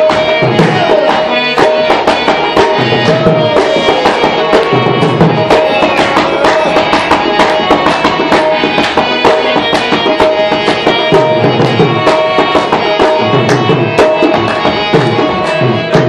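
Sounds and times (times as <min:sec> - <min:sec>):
barrel drum beating: 0:00.0 - 0:16.0
harmonium chords: 0:00.0 - 0:16.0.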